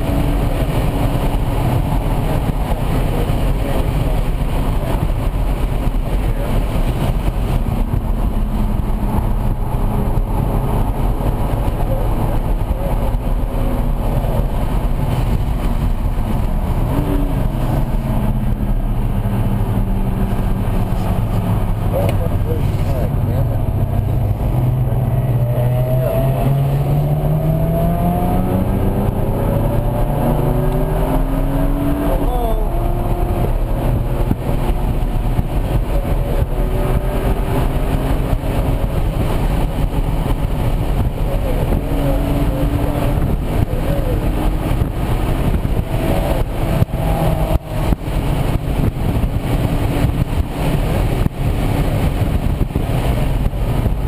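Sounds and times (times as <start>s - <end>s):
car engine accelerating: 0.0s - 54.0s
wind and road noise: 0.0s - 54.0s.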